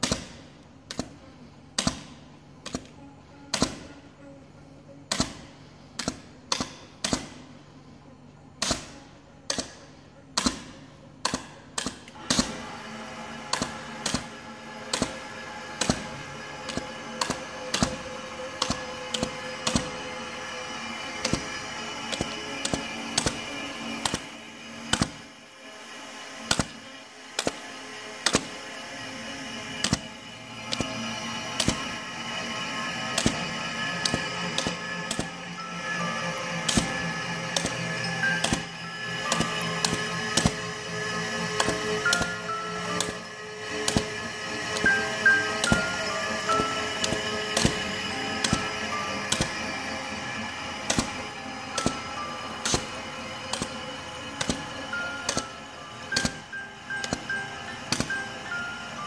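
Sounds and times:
hole-punching machine clacking: 0.0s - 4.0s, 5.1s - 7.6s, 8.6s - 25.4s, 26.3s - 59.0s
music box plinking a tune: 33.2s - 50.3s, 54.4s - 59.0s.

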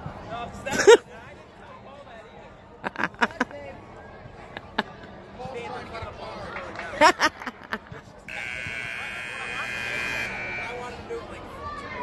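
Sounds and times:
scoreboard buzzer blast: 8.3s - 11.0s.

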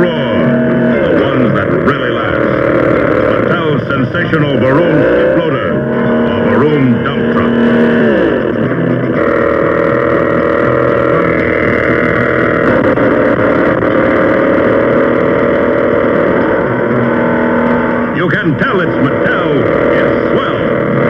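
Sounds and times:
toy truck engine noise: 0.0s - 21.0s.

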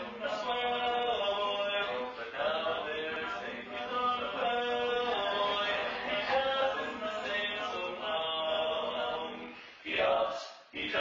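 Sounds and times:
men singing barbershop harmony: 0.0s - 11.0s.

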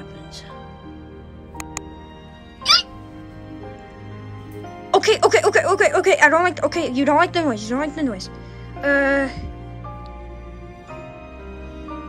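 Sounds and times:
background music: 0.0s - 12.0s
high-pitched cry: 2.6s - 2.9s.

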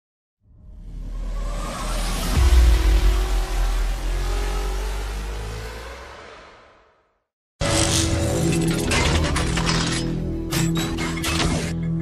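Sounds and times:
deep bass boom: 0.8s - 5.5s.

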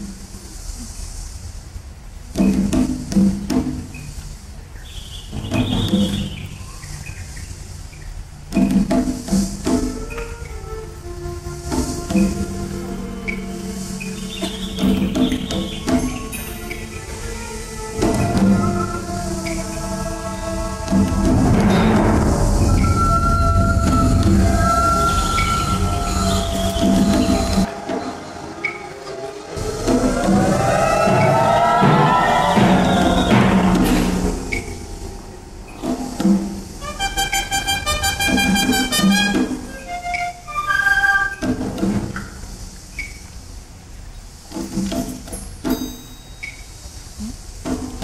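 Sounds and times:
high squealing tones: 16.0s - 36.2s
low rumble: 19.9s - 27.7s.

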